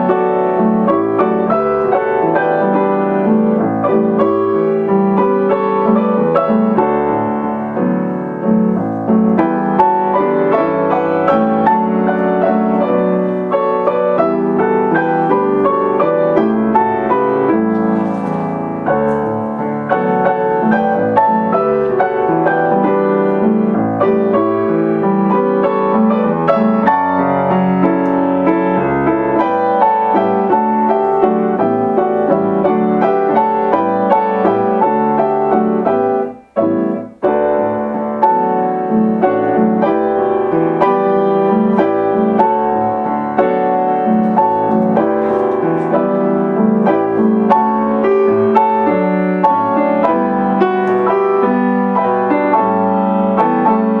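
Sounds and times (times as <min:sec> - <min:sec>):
piano duet with latin rhythms: 0:00.0 - 0:54.0.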